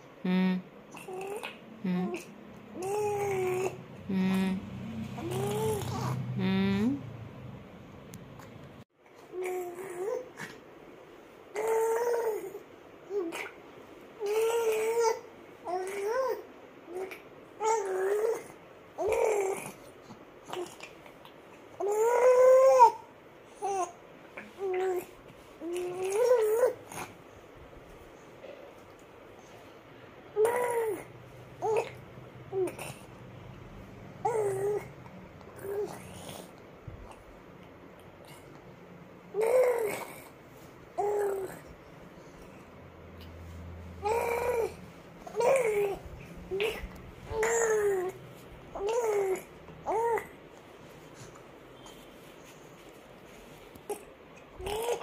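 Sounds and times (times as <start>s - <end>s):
baby cooing: 0.3s - 7.0s, 9.3s - 10.6s, 11.5s - 13.6s, 14.2s - 21.0s, 21.8s - 27.1s, 30.3s - 33.2s, 34.2s - 37.2s, 39.3s - 40.4s, 41.0s - 41.7s, 44.0s - 50.4s, 53.9s - 55.0s.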